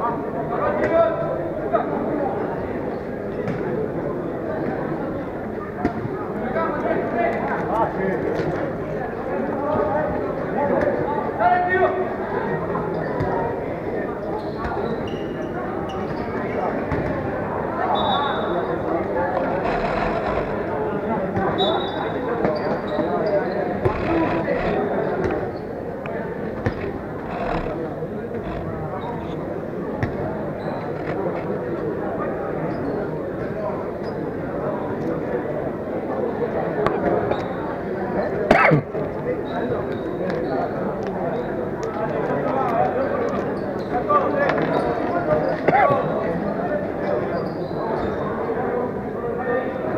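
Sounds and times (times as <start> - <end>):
chatter and shouts of crowd: 0.0 - 49.9.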